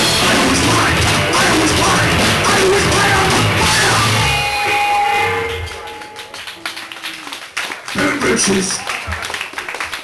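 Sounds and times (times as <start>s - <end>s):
heavy metal band final chord: 0.0s - 6.0s
guitar feedback tones: 0.0s - 6.5s.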